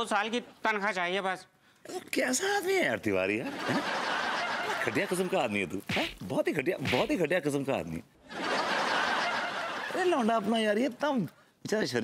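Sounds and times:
laugh track: 3.4s - 6.2s, 8.2s - 10.7s.

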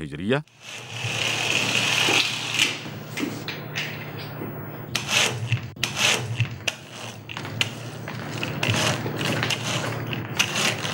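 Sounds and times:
toy car motor whirring: 0.5s - 2.8s, 5.0s - 10.9s.

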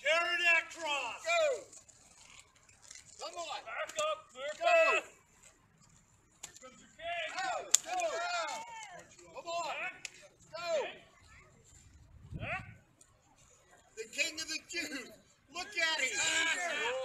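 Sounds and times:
people shouting: 4.6s - 5.1s, 7.0s - 9.1s, 15.5s - 17.0s
sharp crack: 6.4s - 8.9s.

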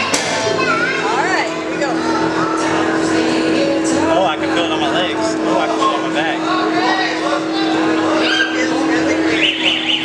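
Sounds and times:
people's voices: 0.0s - 10.0s
steady hum: 0.0s - 10.0s.

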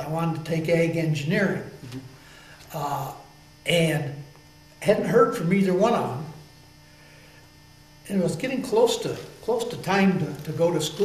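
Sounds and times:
faint low hum: 0.0s - 11.0s
person speaking: 8.1s - 11.0s.

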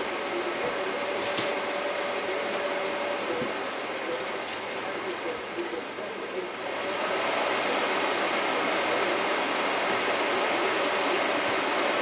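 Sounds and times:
film projector whirring: 0.0s - 12.0s.

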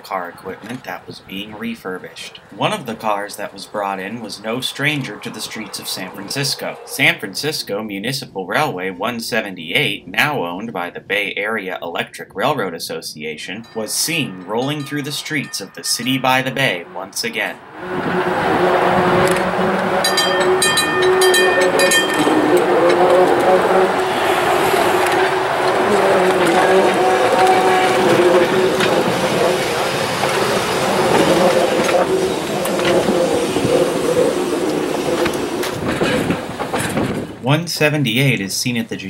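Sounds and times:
wheels rattling on rail: 2.2s - 7.7s, 13.6s - 37.4s
streetcar motor whine: 3.4s - 7.4s, 16.8s - 37.3s
high ringing tone: 13.5s - 17.6s, 20.0s - 24.2s.

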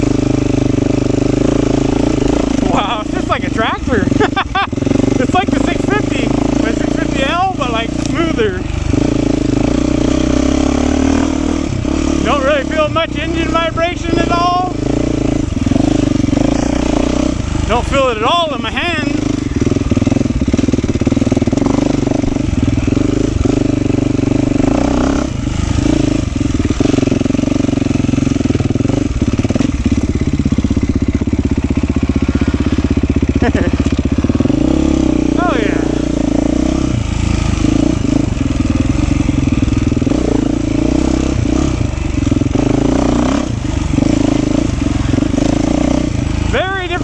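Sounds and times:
dirt bike engine running: 0.0s - 47.0s.

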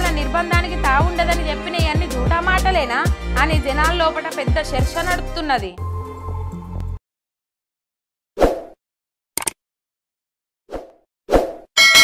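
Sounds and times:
bell-like ding: 11.8s - 12.0s.

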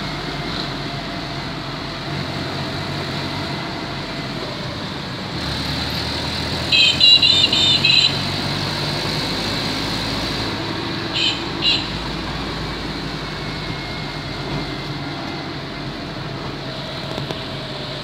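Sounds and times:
motorcycle and car engines: 0.0s - 18.0s
road and wind noise: 0.0s - 18.0s.

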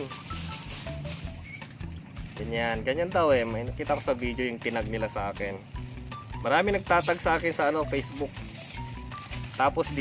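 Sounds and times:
aluminium foil crinkling: 0.0s - 10.0s.

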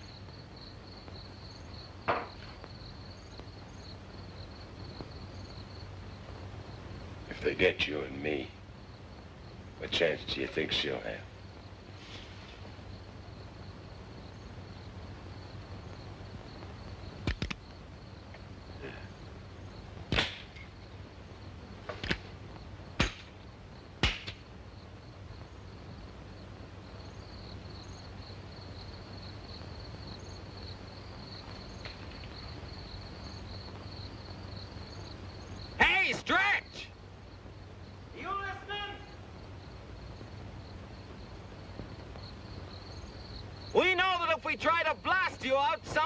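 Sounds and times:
crickets chirring: 0.0s - 46.0s
sharp clicks or knocks: 17.2s - 17.6s.

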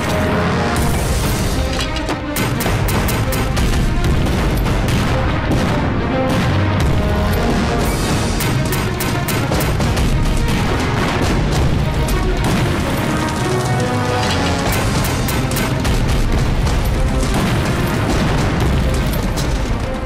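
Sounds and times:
dramatic film score: 0.0s - 20.0s
gunshots: 0.0s - 20.0s
explosions booming: 2.7s - 8.7s, 9.4s - 20.0s.

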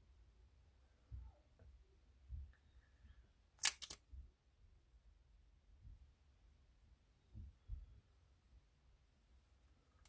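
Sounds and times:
sharp clicks: 3.6s - 4.0s
soft low thump: 7.2s - 8.0s.

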